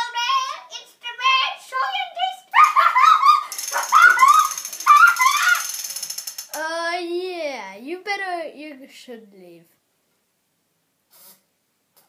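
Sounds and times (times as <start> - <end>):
children calling excitedly: 0.0 - 8.2.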